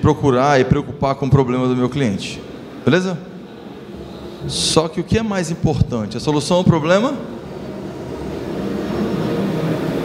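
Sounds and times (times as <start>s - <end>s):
background roar in large hall: 0.0s - 10.0s
faint indistinct voices: 0.0s - 10.0s.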